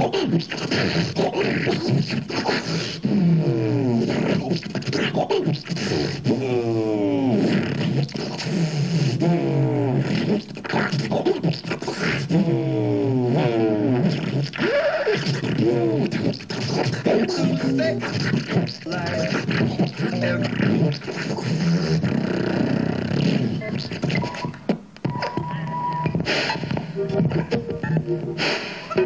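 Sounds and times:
beatboxing vocal noises through pa: 0:00.0 - 0:29.0.

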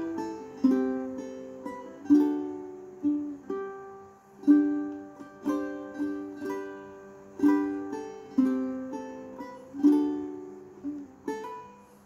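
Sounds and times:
ukulele plucked notes and chords: 0:00.0 - 0:12.0.

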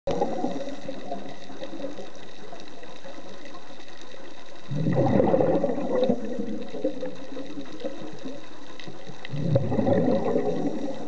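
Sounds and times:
underwater sea noise: 0:00.1 - 0:11.0
diver exhaling bubbles: 0:04.7 - 0:08.3, 0:09.3 - 0:11.0.

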